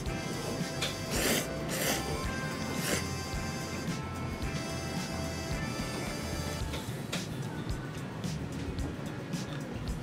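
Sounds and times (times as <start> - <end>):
background music: 0.0 - 10.0
slurping noodles: 0.8 - 3.4.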